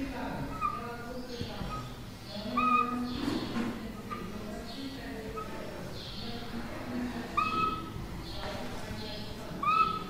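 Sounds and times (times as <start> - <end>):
marker scratching on whiteboard: 0.3 - 4.7, 7.2 - 8.8, 9.6 - 10.0
whiteboard marker squeaking: 0.3 - 6.6, 7.2 - 10.0.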